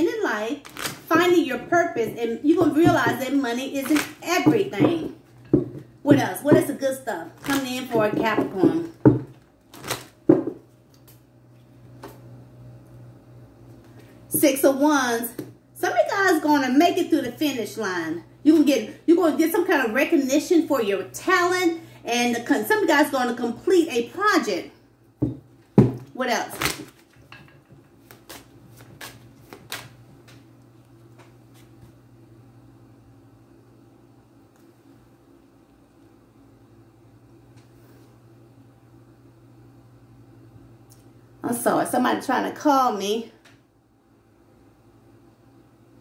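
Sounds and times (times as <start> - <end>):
cards shuffling with sharp snaps: 0.6 - 1.1, 3.8 - 4.2, 26.5 - 27.2, 28.0 - 30.4.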